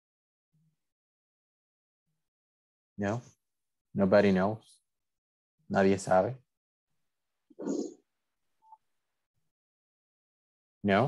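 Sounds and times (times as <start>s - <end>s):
faint electronic beep: 8.6s - 8.8s.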